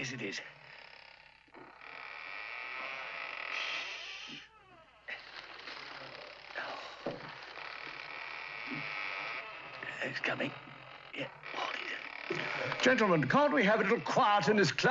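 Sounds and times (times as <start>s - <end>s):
grinding squealing creak of metal: 0.0s - 14.9s.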